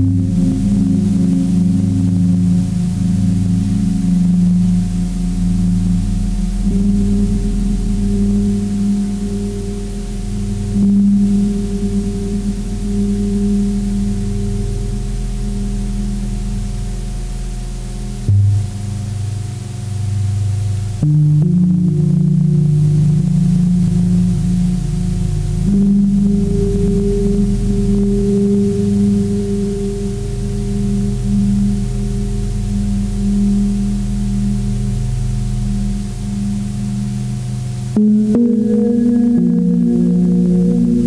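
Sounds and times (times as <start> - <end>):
electronic drone music: 0.0 - 17.1, 17.8 - 41.0.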